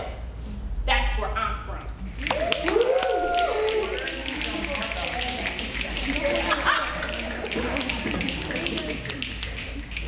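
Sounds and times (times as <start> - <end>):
group hand claps: 2.1 - 10.0
excited voices calling out: 2.2 - 9.4.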